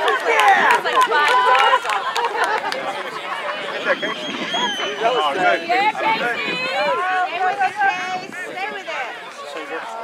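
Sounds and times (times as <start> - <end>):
adult voices talking: 0.0 - 10.0
people laughing: 0.3 - 5.5.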